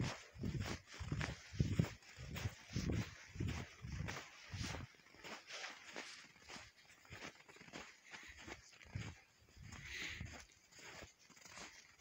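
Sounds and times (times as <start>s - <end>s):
footsteps in snow: 0.0s - 12.0s.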